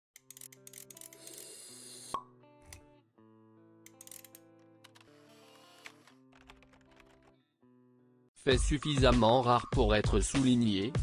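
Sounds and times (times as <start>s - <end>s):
soft music: 0.2s - 11.0s.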